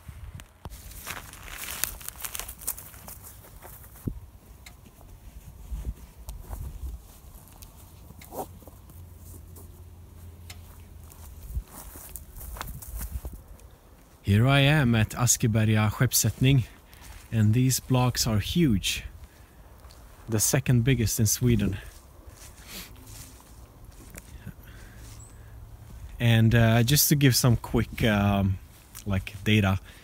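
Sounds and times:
wind rumble on microphone: 0.0s - 0.7s, 5.1s - 7.4s, 11.1s - 13.6s
soft footsteps: 0.3s - 14.2s, 16.3s - 18.0s, 21.5s - 26.2s.

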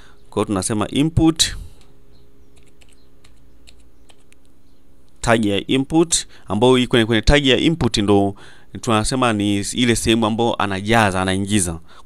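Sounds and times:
keyboard typing: 2.6s - 4.4s.

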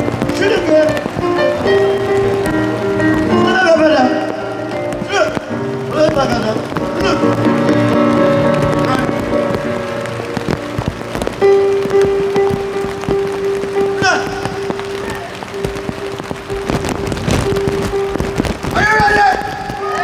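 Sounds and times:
rain crackling on canopy: 0.0s - 20.0s.

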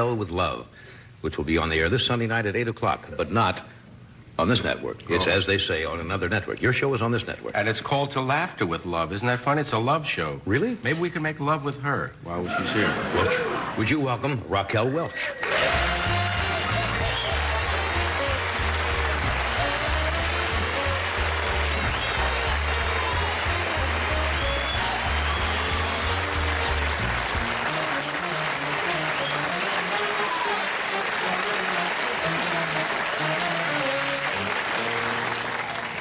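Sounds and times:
audience applause: 15.4s - 36.0s
band playing upbeat music: 15.4s - 36.0s.

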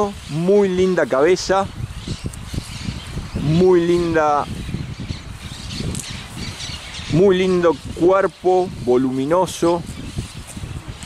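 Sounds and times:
faint bird calls: 0.0s - 8.1s.

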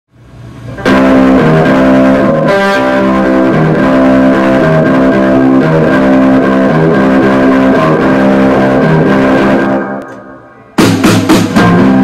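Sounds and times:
electric guitar riff: 0.6s - 12.0s.

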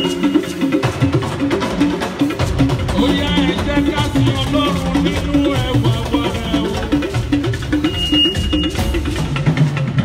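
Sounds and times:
band playing praise groove: 0.0s - 10.0s
high held tone: 7.7s - 9.1s.

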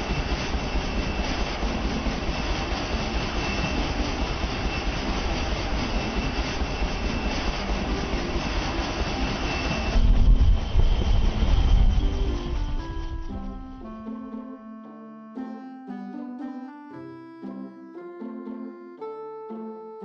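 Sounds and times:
helicopter engine and rotor noise: 0.0s - 14.6s
thin high whine: 0.0s - 14.7s.

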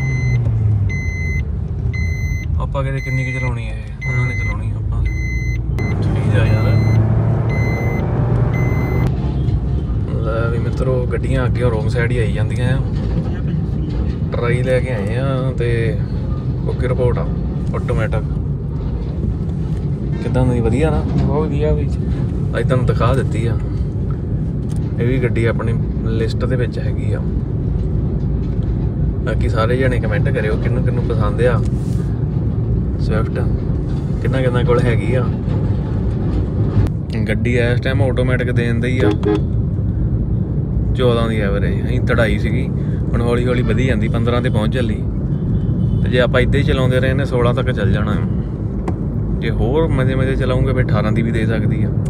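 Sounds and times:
car cabin road and engine rumble: 0.0s - 52.0s
person speaking: 39.0s - 39.4s.

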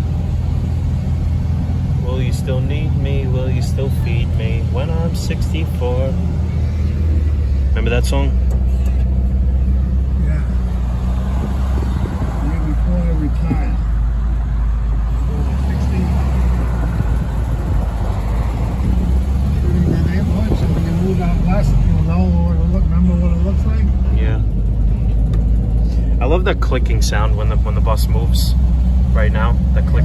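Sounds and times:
van engine droning: 0.0s - 30.0s
people talking: 2.0s - 6.2s, 7.8s - 8.4s, 10.2s - 10.6s, 12.4s - 13.9s, 15.3s - 16.2s, 19.5s - 24.4s, 26.2s - 30.0s.

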